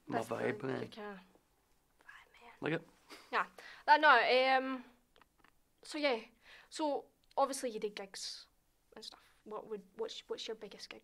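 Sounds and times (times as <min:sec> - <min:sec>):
man speaking: 0:00.0 - 0:00.9, 0:02.6 - 0:02.9.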